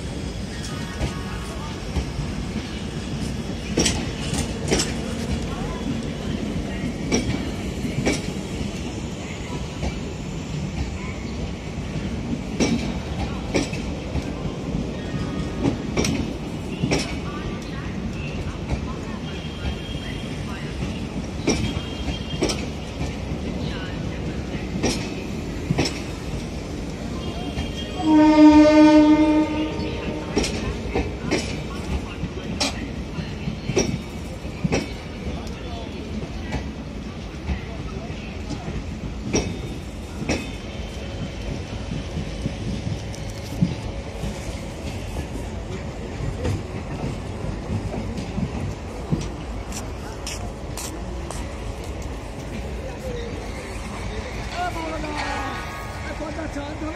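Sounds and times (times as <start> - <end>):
train coaches rumbling past: 0.0 - 56.9
train horn: 27.6 - 30.5.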